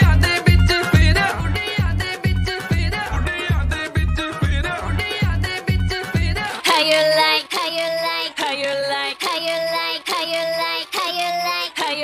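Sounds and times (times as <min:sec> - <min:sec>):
music: 0:00.0 - 0:12.0
high childlike singing voice: 0:06.6 - 0:12.0.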